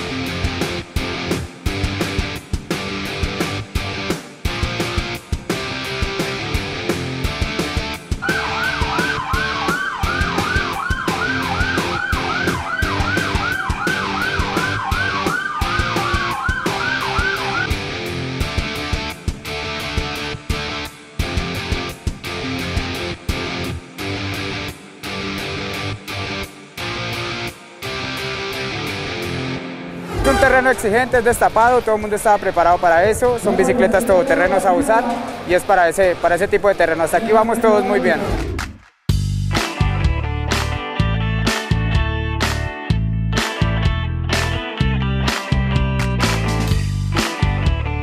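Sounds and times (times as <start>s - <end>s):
rock music: 0.0s - 38.3s, 39.1s - 48.0s
siren yelp and wail: 8.2s - 17.7s.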